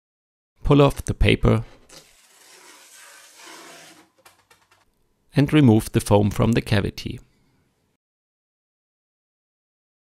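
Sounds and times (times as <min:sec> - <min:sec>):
paper peeling papery rustle: 0:01.9 - 0:04.8.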